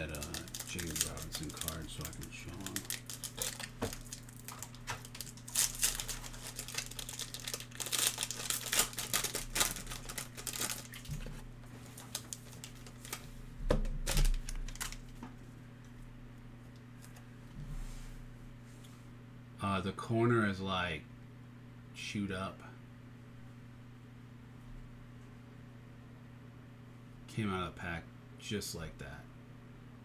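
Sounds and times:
foil wrapper crinkling: 0.0s - 15.2s
steady low hum: 0.0s - 30.0s.

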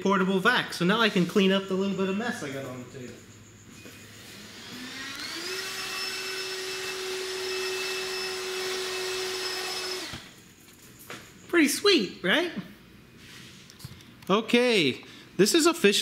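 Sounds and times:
vacuum cleaner running: 4.0s - 10.4s.

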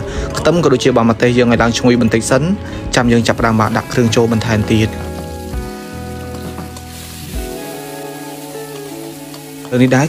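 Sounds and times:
background music with held notes: 0.0s - 10.0s
food sizzling in hot oil: 3.1s - 10.0s.

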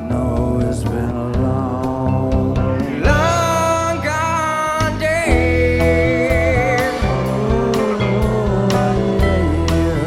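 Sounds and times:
live band playing slowly: 0.0s - 10.0s
upright bass: 0.0s - 10.0s.

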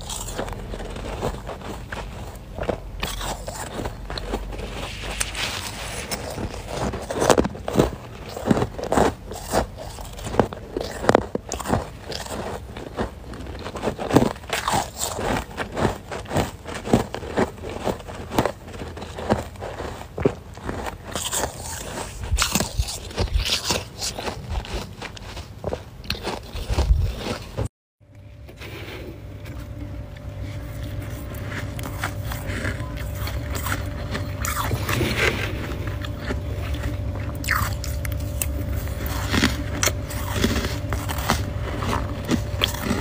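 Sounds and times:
chewing crunchy frost: 0.0s - 43.0s.

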